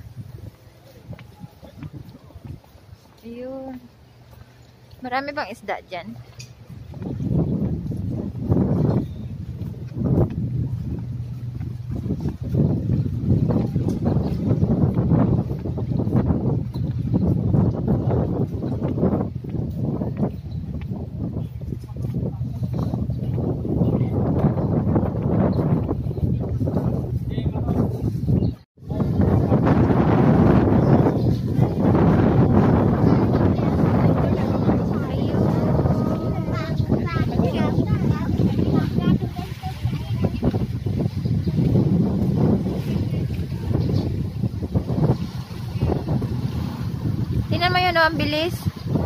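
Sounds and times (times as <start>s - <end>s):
wind blowing on microphone: 0.0s - 49.0s
rush of water: 28.8s - 49.0s.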